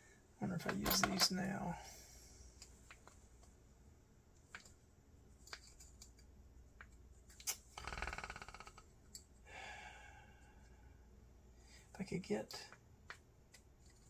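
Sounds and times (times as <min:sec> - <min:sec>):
small metal parts clicking: 0:05.4 - 0:07.6, 0:13.5 - 0:14.0.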